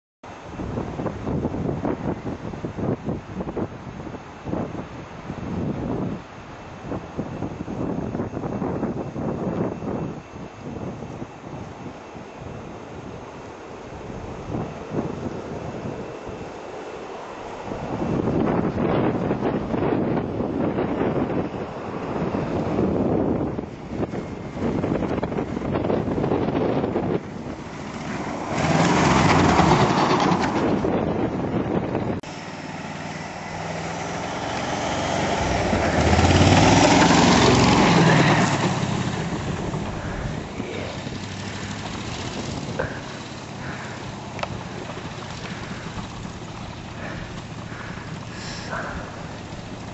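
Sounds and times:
engine working under load: 0.3 - 49.9
rush of thrown snow: 46.9 - 49.9.

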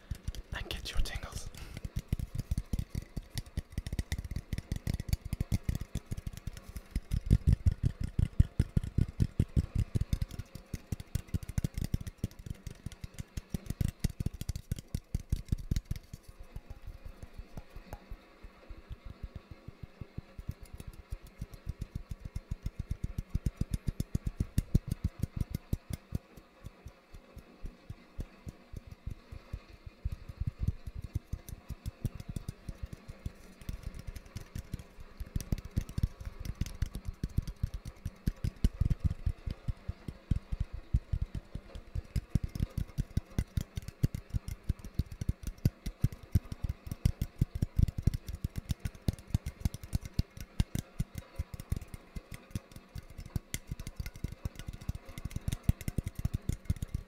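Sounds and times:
fingertips tapping on a can: 0.0 - 57.0.

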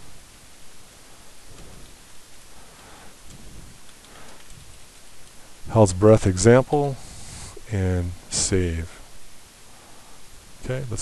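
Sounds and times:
microphone and room hiss: 0.0 - 11.0.

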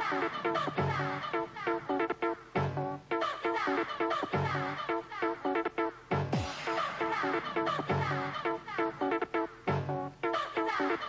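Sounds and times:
bassline: 0.0 - 3.3, 5.5 - 10.4
house music: 0.0 - 11.0
synth chord stabs: 6.2 - 9.2.

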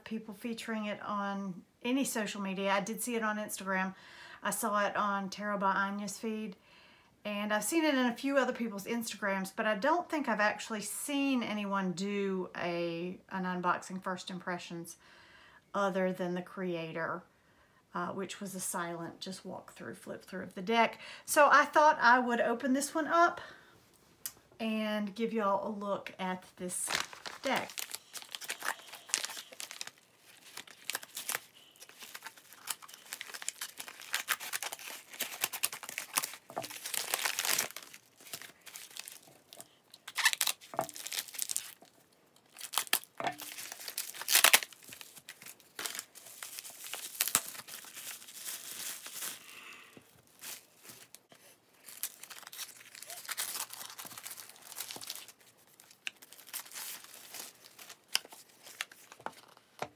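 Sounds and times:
bubble wrap crinkling: 26.6 - 59.8
plastic mailer bag tearing: 26.8 - 49.6, 51.8 - 59.2.

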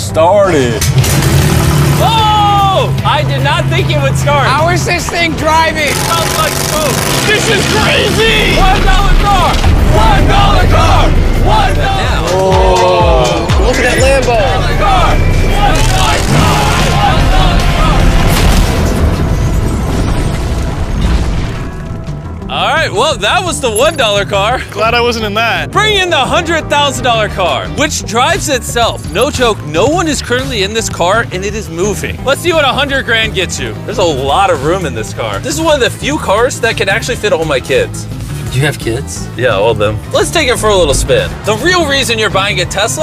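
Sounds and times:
background music: 0.0 - 43.0
car engine running: 0.6 - 12.4.

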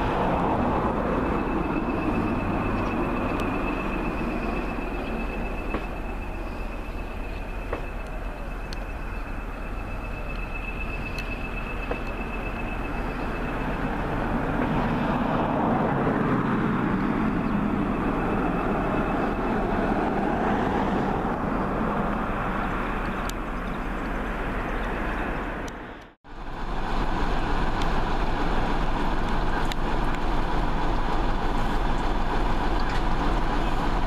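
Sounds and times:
diesel locomotive engine running: 0.0 - 34.0
second diesel locomotive idling: 0.0 - 34.0.

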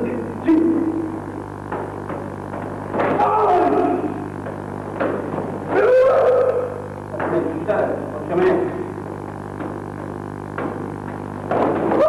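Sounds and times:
person shouting: 3.2 - 4.3, 5.7 - 6.8.

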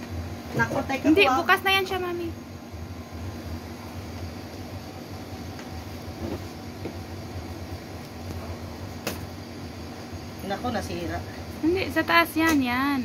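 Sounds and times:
appliance electric hum: 0.0 - 13.0.

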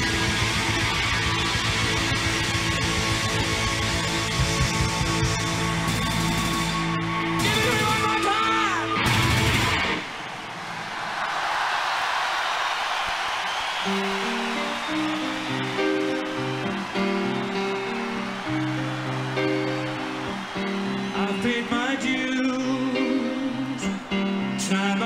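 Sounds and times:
rock band playing: 0.0 - 10.1, 13.8 - 25.0
crowd cheering: 0.0 - 25.0.

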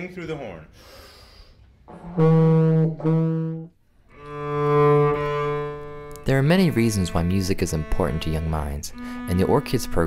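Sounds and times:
brass instrument long notes: 1.9 - 3.8.

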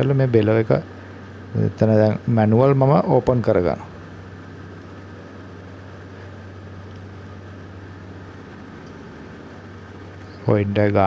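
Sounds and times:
refrigeration equipment humming: 0.0 - 11.0.

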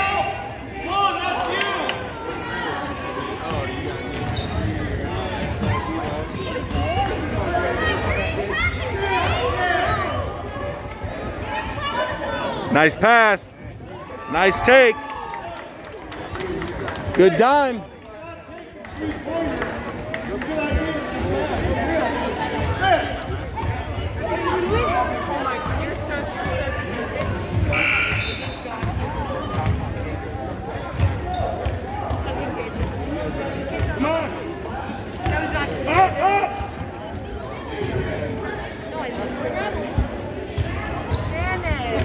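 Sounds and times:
voices in a large gym: 0.0 - 42.0.

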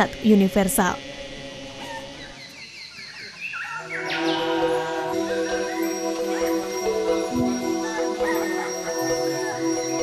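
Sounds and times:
bird chirping: 1.9 - 9.7.

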